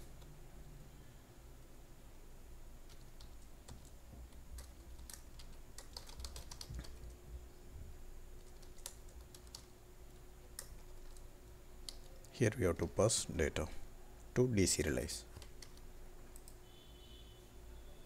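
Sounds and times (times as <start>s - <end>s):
computer keyboard typing: 2.8s - 7.2s, 8.4s - 12.3s, 15.3s - 16.6s.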